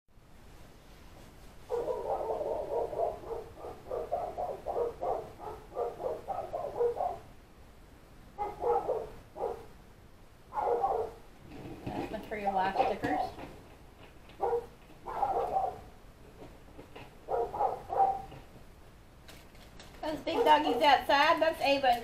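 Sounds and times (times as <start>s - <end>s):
big dogs barking outside: 1.6s - 7.5s, 8.2s - 11.4s, 12.6s - 18.8s, 20.2s - 21.1s.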